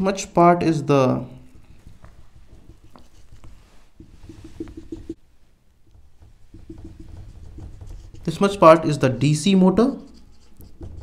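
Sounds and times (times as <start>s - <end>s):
whiteboard marker squeaking: 2.3s - 5.2s, 6.4s - 11.0s.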